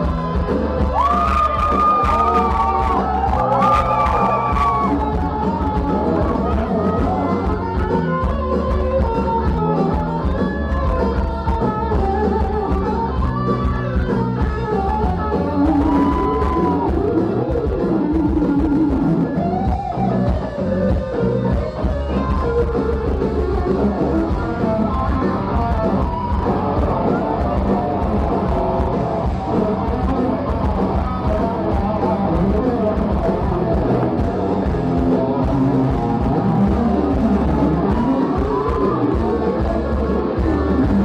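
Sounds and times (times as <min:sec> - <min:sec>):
bass: 0:00.0 - 0:41.0
distorted electric guitar: 0:00.0 - 0:41.0
drums: 0:00.0 - 0:41.0.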